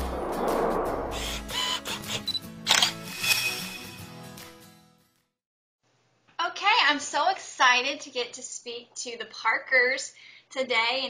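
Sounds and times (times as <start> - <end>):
intro music: 0.0 - 1.5, 2.9 - 4.6
short high beeps: 2.2 - 3.8
camera shutter click: 2.7 - 3.0.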